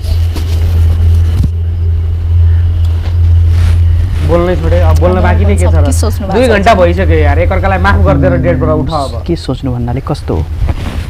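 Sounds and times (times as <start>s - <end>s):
low-pitched hum: 0.0s - 10.0s.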